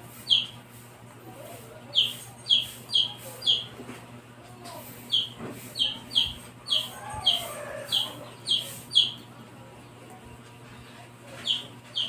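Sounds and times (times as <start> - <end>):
bird chirping: 0.2 - 0.6, 1.9 - 3.7, 5.1 - 9.3, 11.4 - 12.0.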